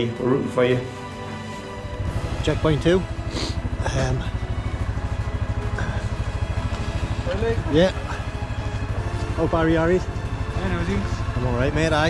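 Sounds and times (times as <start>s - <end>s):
engine idling with low throb: 0.0s - 12.0s.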